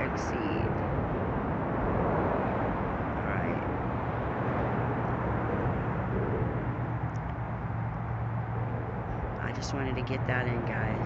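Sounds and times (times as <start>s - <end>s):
low hum: 0.0s - 11.0s
outdoor rumble and hiss: 0.0s - 11.0s.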